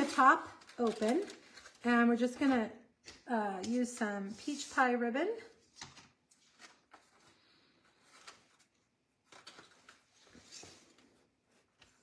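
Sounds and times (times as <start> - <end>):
ribbon and paper rustling: 0.0 - 12.0.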